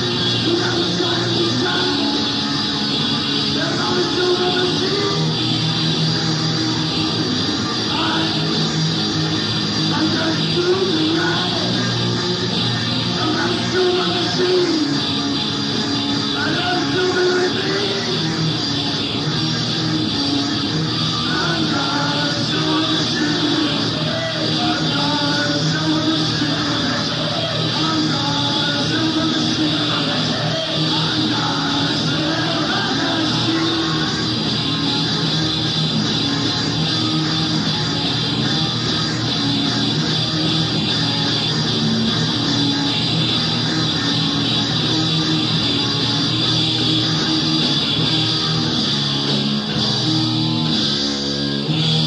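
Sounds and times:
punk rock band playing: 0.0s - 52.0s.

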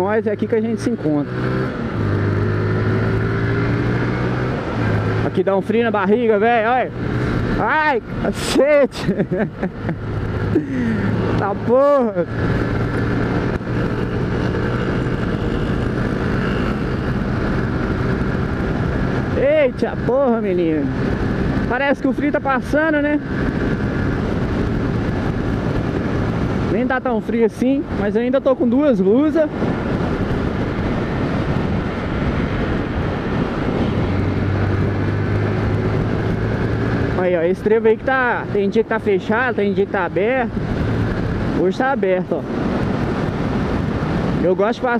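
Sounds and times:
motorcycle engine running steadily: 0.0s - 44.9s
wind rushing over microphone: 0.0s - 44.9s.

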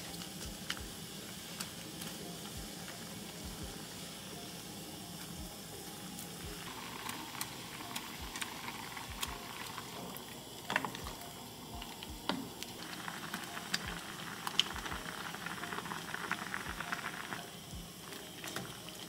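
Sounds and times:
soup bubbling in a saucepan: 0.0s - 19.0s.

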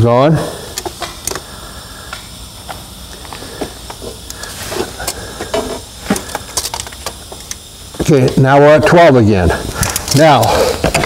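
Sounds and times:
jack clicking and scraping: 9.7s - 11.0s.

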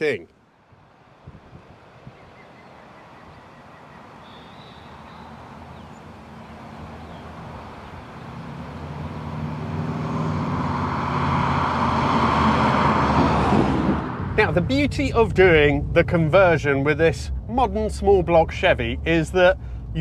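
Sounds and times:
car engine driving past: 4.2s - 16.5s.

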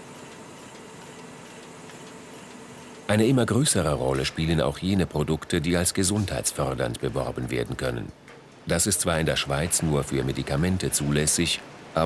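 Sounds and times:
bottling machinery humming: 0.0s - 12.0s.

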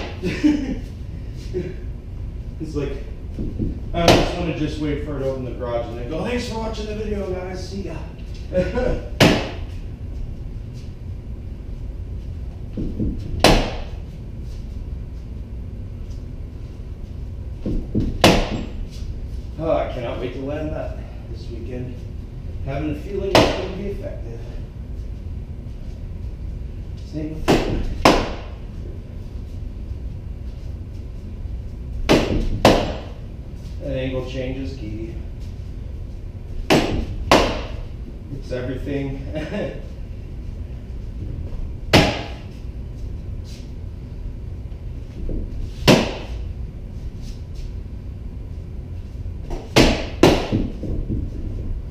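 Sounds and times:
low steady rumble: 0.0s - 51.9s
rattan sword striking padded post: 9.2s - 9.7s, 12.8s - 14.0s, 17.6s - 18.8s, 27.4s - 28.6s, 32.1s - 33.2s, 36.7s - 37.9s, 41.9s - 42.5s, 45.8s - 46.4s, 49.5s - 51.1s.

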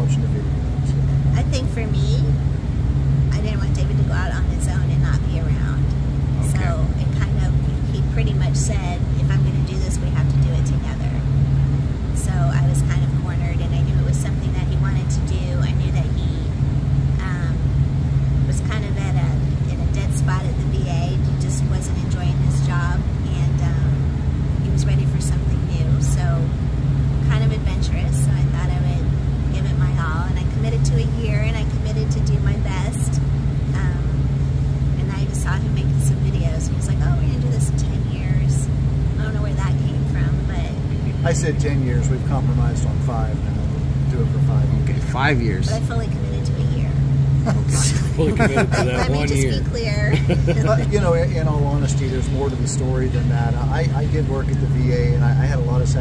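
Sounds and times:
woman talking: 0.0s - 2.4s, 3.3s - 11.3s, 12.2s - 16.5s, 17.2s - 17.7s, 18.4s - 24.0s, 24.6s - 26.5s, 27.2s - 34.2s, 35.0s - 41.3s, 45.6s - 47.1s, 47.7s - 52.7s
low hum: 0.0s - 56.0s.

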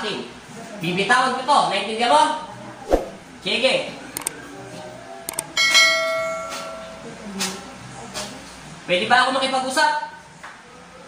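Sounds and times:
mouse clicks: 4.2s - 4.4s, 5.3s - 5.5s
bell chime: 5.6s - 7.0s.

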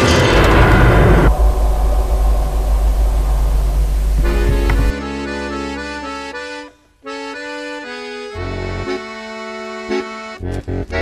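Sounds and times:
low rumble: 0.0s - 6.6s.

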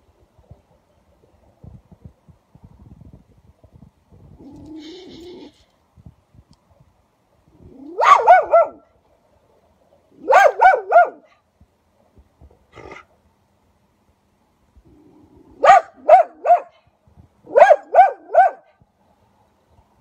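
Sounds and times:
fox barking: 7.7s - 8.9s, 10.2s - 11.4s, 15.6s - 16.8s, 17.5s - 18.8s.

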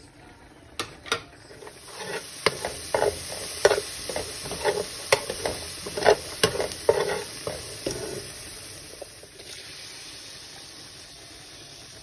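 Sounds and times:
metal spoon scraping a pan: 1.5s - 9.2s
onion sizzling in a pan: 1.5s - 12.0s.

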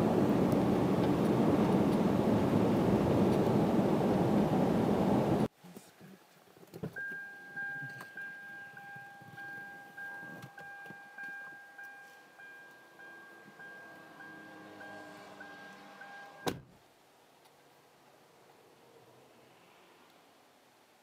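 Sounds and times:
car door warning chime: 7.0s - 16.6s
car door shutting: 15.2s - 16.7s.

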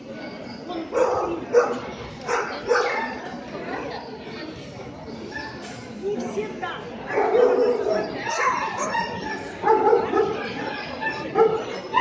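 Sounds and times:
dog barking: 0.9s - 3.2s, 7.1s - 11.8s.

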